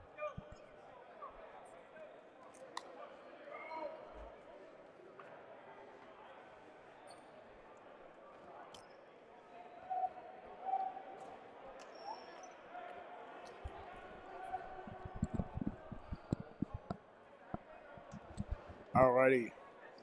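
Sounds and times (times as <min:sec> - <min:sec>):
balls bouncing on hardwood floor: 0:14.6 - 0:17.0, 0:18.0 - 0:19.0.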